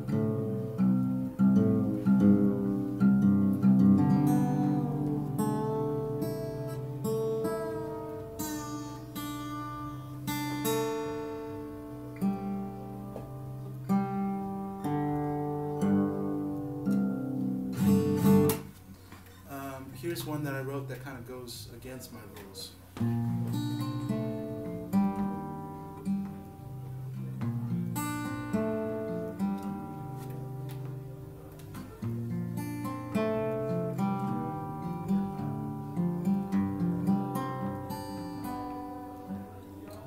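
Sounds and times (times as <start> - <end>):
acoustic guitar chords: 0.0 - 40.0.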